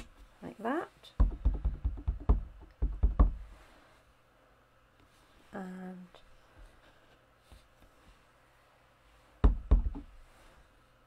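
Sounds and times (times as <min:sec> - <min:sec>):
stamp block knocking on ink pad: 0:01.2 - 0:03.4.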